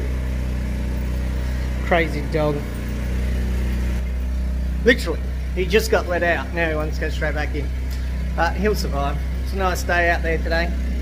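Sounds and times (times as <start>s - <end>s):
generator humming: 0.0s - 11.0s.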